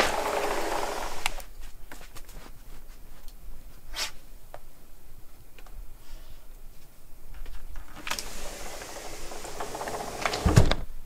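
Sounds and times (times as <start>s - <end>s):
sliding glass door rolling open: 0.0s - 1.4s, 7.8s - 10.8s.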